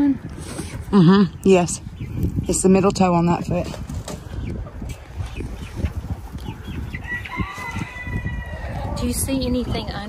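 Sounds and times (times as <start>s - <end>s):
chickens clucking: 0.2s - 10.0s
rooster crowing: 7.0s - 9.0s.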